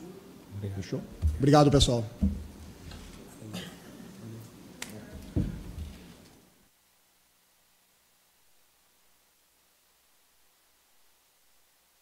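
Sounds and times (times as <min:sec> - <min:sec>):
heavy low thump: 0:01.1 - 0:02.8, 0:05.3 - 0:06.0.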